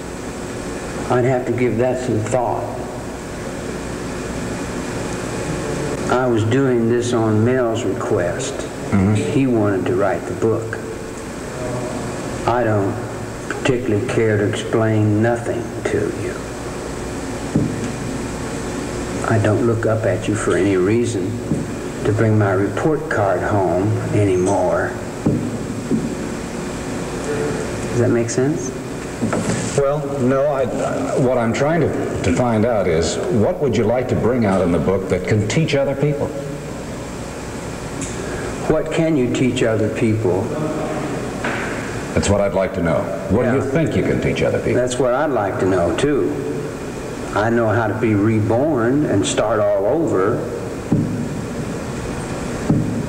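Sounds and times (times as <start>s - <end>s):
recording hum and hiss: 0.0s - 53.0s.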